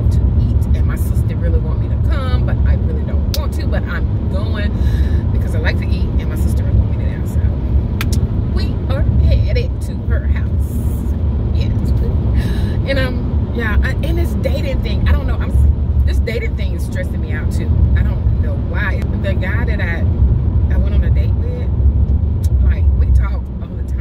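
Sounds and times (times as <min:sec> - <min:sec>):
woman talking: 0:00.0 - 0:07.6, 0:08.5 - 0:20.1, 0:20.7 - 0:21.7, 0:22.4 - 0:24.0
car engine and road rumble: 0:00.0 - 0:24.0.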